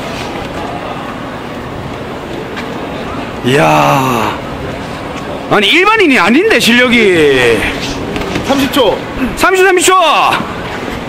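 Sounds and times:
city traffic rumble: 0.0 - 11.0.

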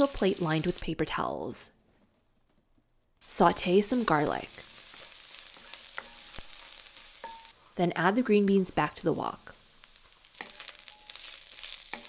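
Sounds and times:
garlic sizzling in oil: 0.0 - 1.1, 3.2 - 12.0.

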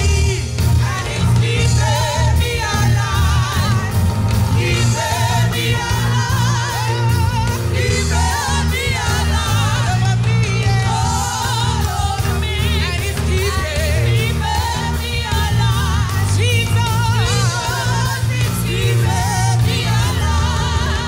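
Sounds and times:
choir singing: 0.0 - 21.0
heavy bass line: 0.0 - 21.0
steady drum beat: 0.0 - 21.0.

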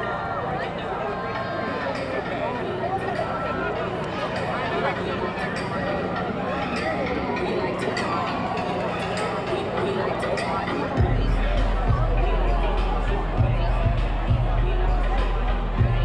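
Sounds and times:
crowd hubbub: 0.0 - 16.0.

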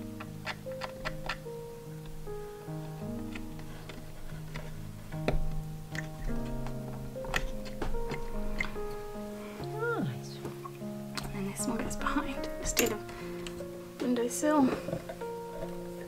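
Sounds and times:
wooden pieces clicking: 0.0 - 2.2
soft instrumental music: 0.0 - 16.0.

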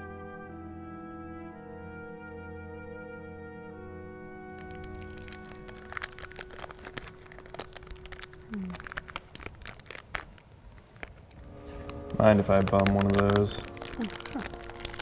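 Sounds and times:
orchestral music: 0.0 - 7.3, 11.4 - 15.0
paper crinkling: 4.4 - 15.0.

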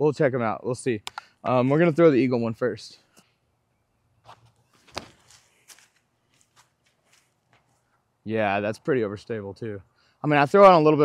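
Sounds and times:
footsteps on concrete: 4.3 - 7.9.

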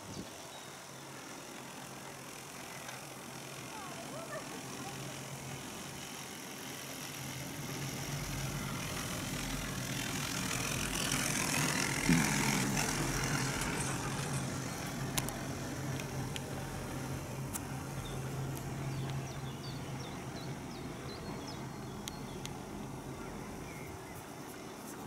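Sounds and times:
chairlift rope rumbling rattle: 1.3 - 20.8
sharp clicks: 15.1 - 16.5, 22.0 - 22.6.

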